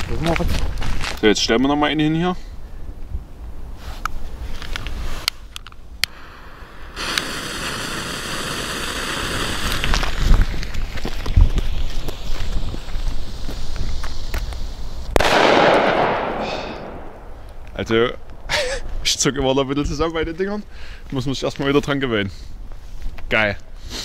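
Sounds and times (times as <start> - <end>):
fuse hissing and sputtering: 6.0 - 15.1
firecracker bang: 15.1 - 17.4.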